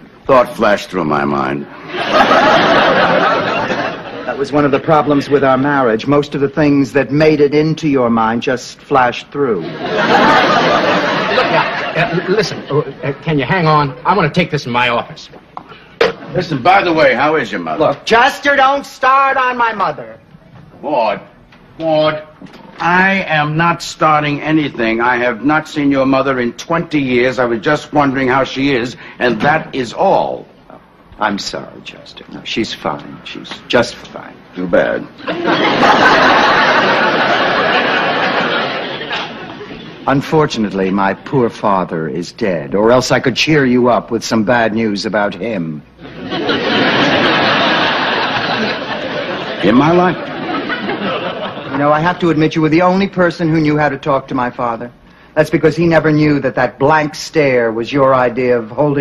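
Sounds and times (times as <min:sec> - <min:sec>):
studio audience laughing: 0:01.7 - 0:05.6, 0:09.6 - 0:13.3, 0:35.2 - 0:40.1, 0:46.0 - 0:52.0.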